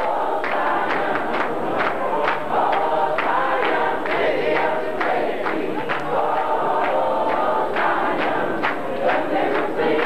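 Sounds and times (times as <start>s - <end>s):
choir and congregation singing hymn: 0.0s - 10.0s.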